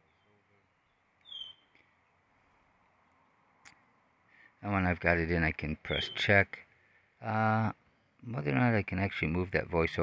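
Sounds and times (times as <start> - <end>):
high falling chirp: 0.0 - 1.8, 5.9 - 6.4
faint steady hiss: 0.0 - 10.0.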